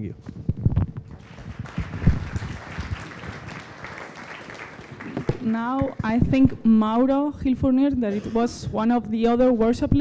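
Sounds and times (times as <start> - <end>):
audience applauding: 1.1 - 5.8.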